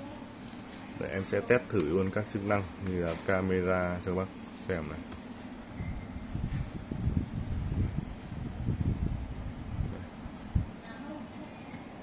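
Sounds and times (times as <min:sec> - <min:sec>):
microphone handling noise: 0:06.3 - 0:10.7.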